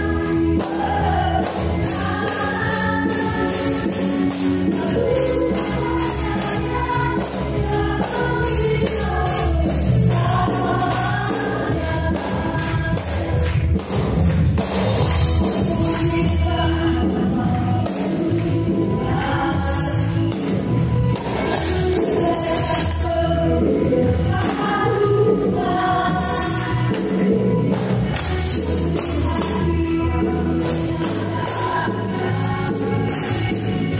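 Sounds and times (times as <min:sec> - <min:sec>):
choir-like voices: 0:00.0 - 0:13.6, 0:15.2 - 0:33.9
stage piano chords: 0:00.0 - 0:33.9.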